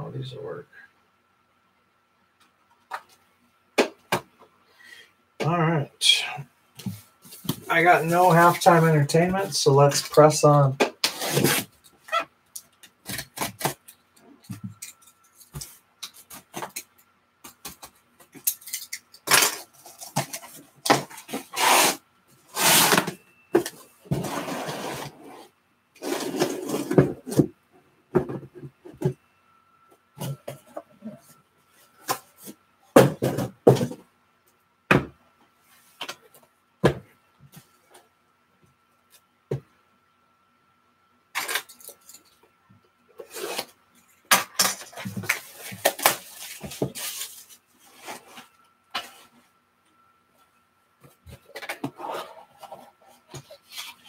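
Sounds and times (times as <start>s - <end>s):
cardboard rustling and tearing: 11.0s - 11.7s, 19.3s - 23.1s.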